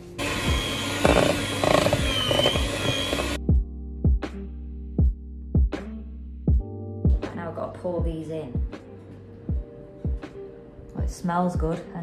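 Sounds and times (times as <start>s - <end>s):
electric hand mixer whirring: 0.0s - 3.4s
background music with beat: 0.0s - 7.4s, 8.0s - 11.8s.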